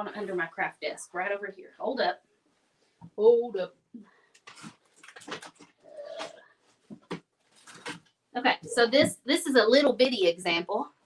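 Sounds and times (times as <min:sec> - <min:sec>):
objects being moved rummaging: 0:04.4 - 0:08.1.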